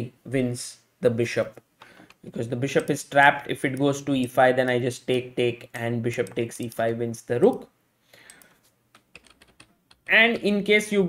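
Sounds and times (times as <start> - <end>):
computer keys clicking: 8.2 - 10.1.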